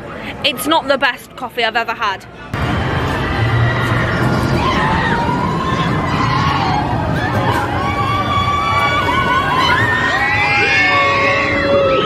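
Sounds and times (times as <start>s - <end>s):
roller coaster train rumbling on track: 2.6s - 12.0s
riders crying out: 2.7s - 12.0s.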